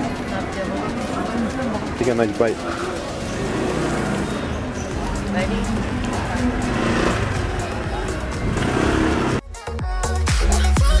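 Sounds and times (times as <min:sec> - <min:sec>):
voices in background: 0:00.0 - 0:09.3
street traffic: 0:00.0 - 0:09.8
electronic dance music: 0:04.9 - 0:11.0.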